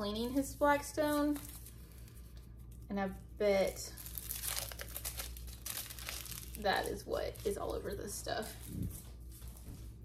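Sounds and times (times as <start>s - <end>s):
plastic wrapping crinkling: 0.0s - 10.0s.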